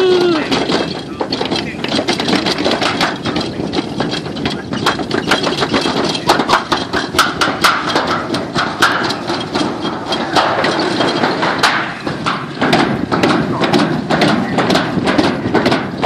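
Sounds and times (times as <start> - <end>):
sled rumbling down metal chute: 0.0 - 16.0
rapid irregular clacks: 0.1 - 16.0.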